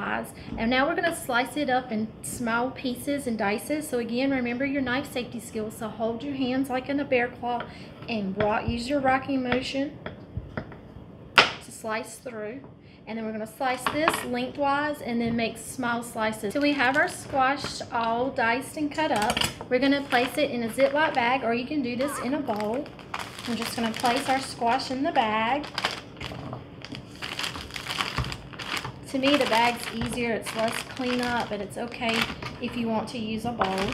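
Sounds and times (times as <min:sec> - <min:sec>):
plastic bag crinkling: 0:16.4 - 0:17.4, 0:19.0 - 0:32.8, 0:33.5 - 0:33.9.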